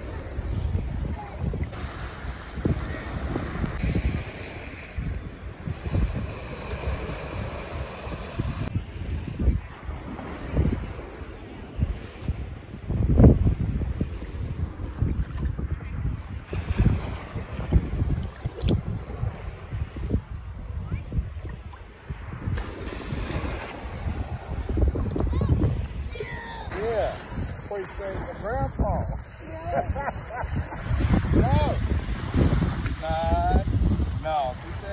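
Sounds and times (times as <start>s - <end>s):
small waves sloshing: 0.0s - 8.7s, 21.3s - 34.9s
wind buffeting microphone: 0.0s - 34.9s.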